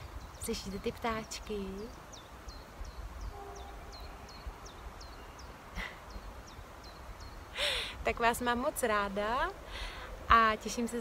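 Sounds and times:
low wind rumble on microphone: 0.0 - 11.0
bird singing high falling note: 3.3 - 5.5.

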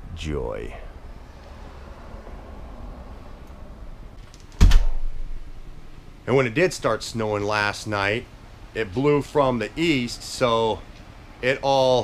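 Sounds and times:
door slamming shut: 4.4 - 5.4
low steady rumble: 4.8 - 11.6.

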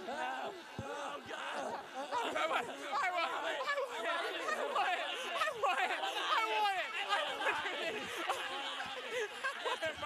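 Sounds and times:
overlapping voices talking: 0.0 - 10.0.

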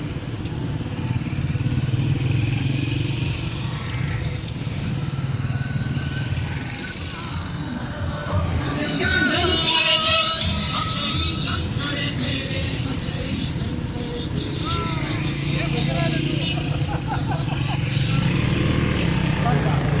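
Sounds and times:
motorcycles and cars driving past: 0.0 - 20.0
people calling out: 13.7 - 16.9.

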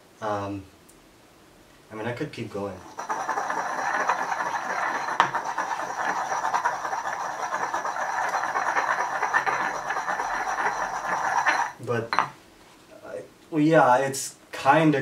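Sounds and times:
stone pestle grinding in mortar: 2.8 - 11.8.

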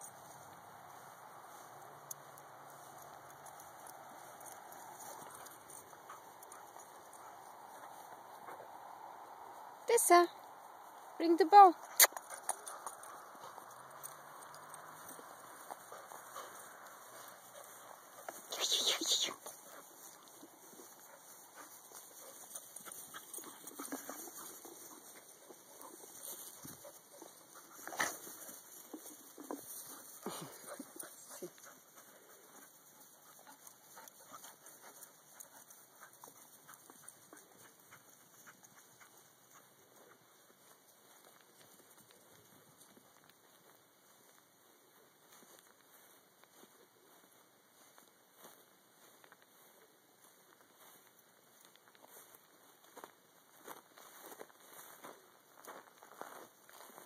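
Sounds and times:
rustling through dry grass: 0.0 - 11.2, 11.8 - 57.0.

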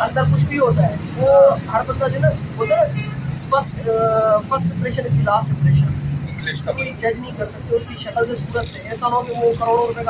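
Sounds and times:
men talking: 0.0 - 10.0
road traffic rumble: 0.0 - 10.0.

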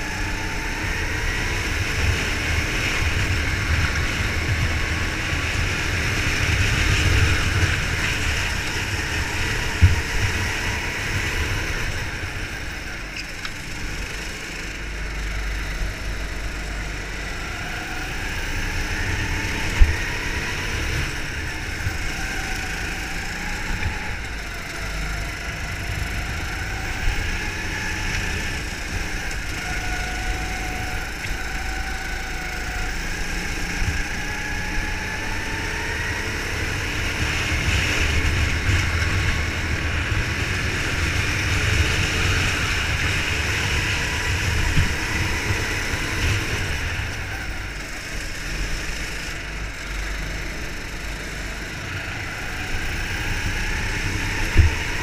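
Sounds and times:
go-kart engine running flat out: 0.0 - 55.0.

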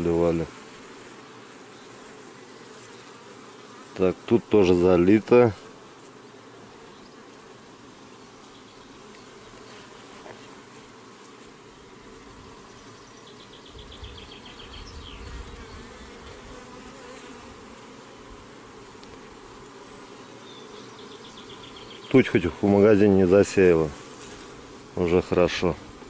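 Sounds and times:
honeybees buzzing: 0.0 - 26.0.

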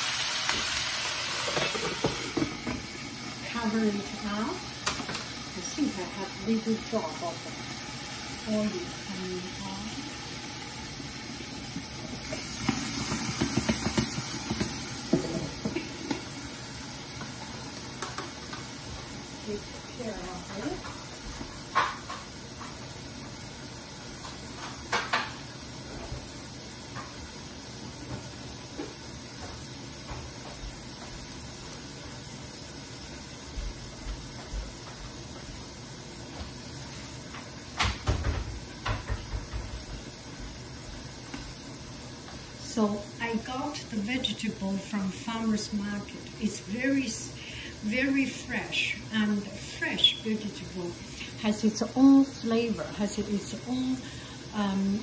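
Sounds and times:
vegetables sizzling in a frying pan: 0.0 - 55.0.

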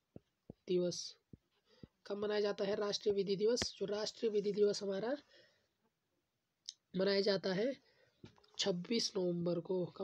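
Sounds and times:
person speaking: 0.1 - 5.5, 6.6 - 10.0.

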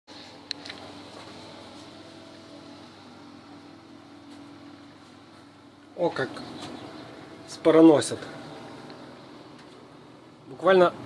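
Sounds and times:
faint machine hum: 0.1 - 11.0.

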